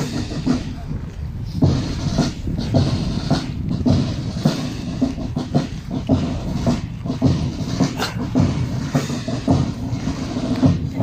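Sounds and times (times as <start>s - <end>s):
boots marching on gravel: 0.0s - 11.0s.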